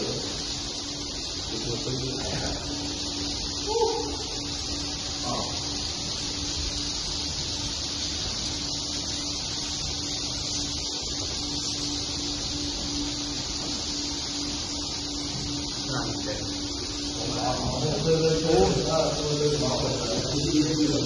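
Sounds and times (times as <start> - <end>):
swiftlets twittering: 0.0 - 21.0.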